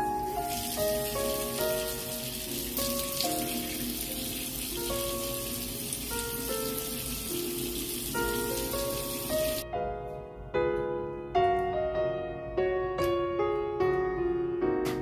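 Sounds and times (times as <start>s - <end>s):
tap water running into sink: 0.0s - 9.6s
melodic background music: 0.0s - 15.0s.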